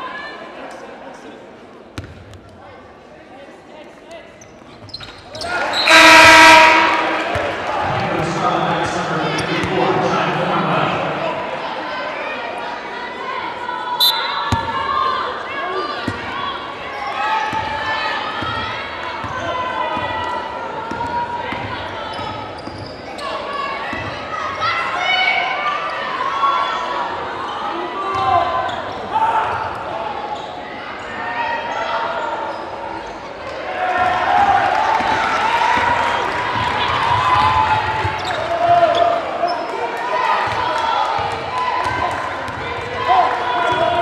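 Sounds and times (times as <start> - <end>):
voices echoing in a gym: 0.0 - 44.0.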